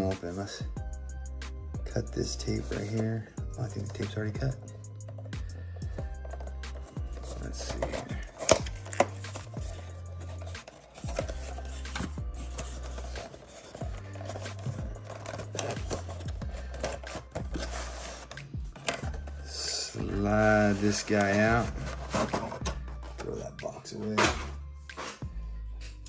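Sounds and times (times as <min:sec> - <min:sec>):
background music with bass line: 0:00.0 - 0:26.0
box rubbing and scraping: 0:02.3 - 0:23.6.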